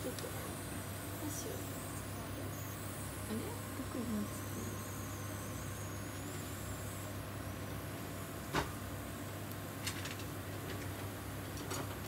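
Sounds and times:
kitchen background hum: 0:00.0 - 0:12.0.

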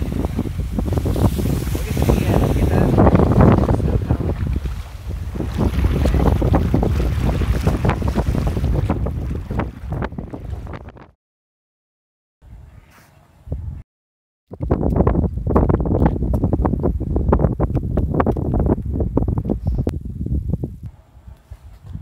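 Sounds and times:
wind buffeting microphone: 0:00.0 - 0:11.2, 0:13.4 - 0:13.8, 0:14.5 - 0:22.0.

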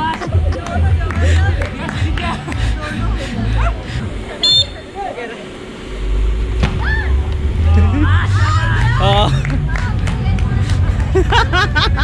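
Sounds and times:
low rumble: 0:00.3 - 0:12.0
people shouting and shrieking: 0:06.7 - 0:09.4.

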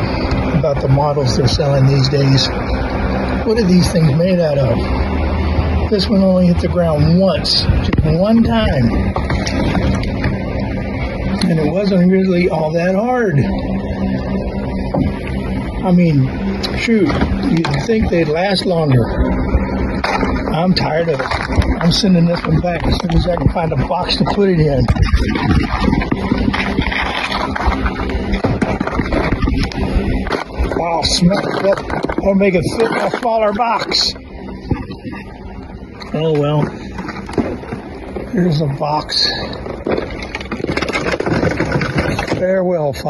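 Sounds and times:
wind buffeting microphone: 0:06.6 - 0:36.0
wind buffeting a microphone: 0:19.0 - 0:30.8.

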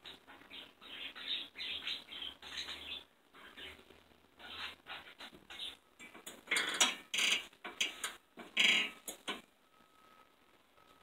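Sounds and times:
budgerigars chirping: 0:00.3 - 0:03.8
faint thin steady tone: 0:09.5 - 0:11.0.

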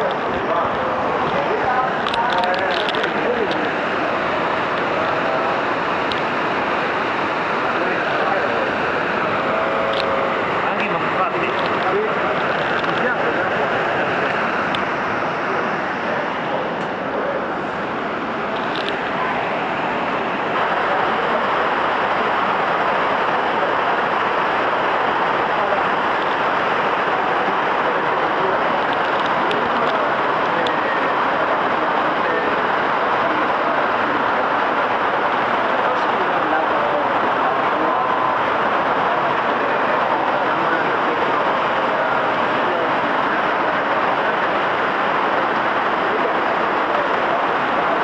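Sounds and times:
underground stream rushing: 0:00.0 - 0:48.0.

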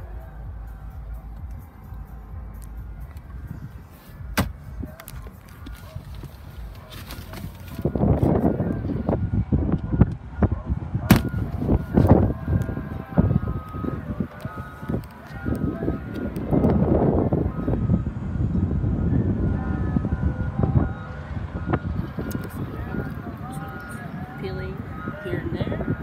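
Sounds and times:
phone microphone handling rumble: 0:01.3 - 0:17.6.

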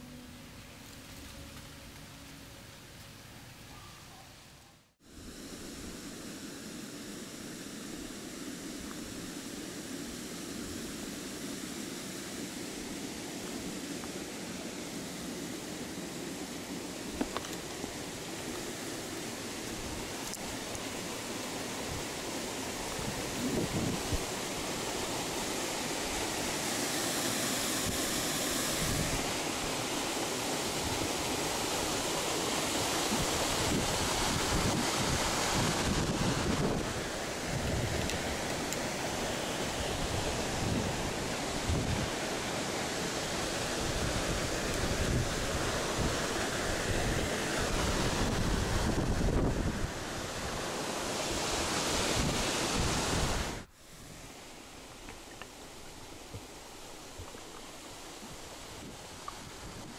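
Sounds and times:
wind gusting on microphone: 0:15.1 - 0:53.7, 0:56.1 - 0:59.9.

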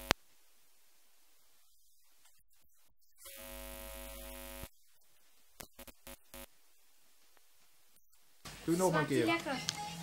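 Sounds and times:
buzzy electronic tone: 0:02.5 - 0:04.7, 0:05.6 - 0:06.5.

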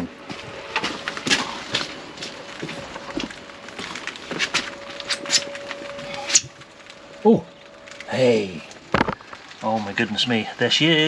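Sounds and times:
faint steady hum: 0:00.0 - 0:11.0
footsteps on wet paving: 0:00.3 - 0:04.8.

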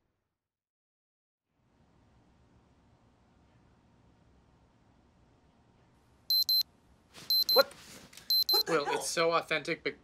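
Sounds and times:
electronic alarm beeping: 0:06.3 - 0:06.6, 0:07.3 - 0:07.6, 0:08.3 - 0:08.6.

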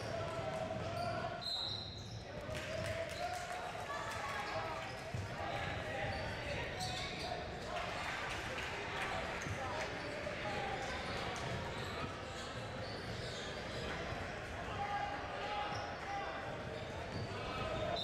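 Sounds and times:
many voices talking: 0:00.0 - 0:18.0.

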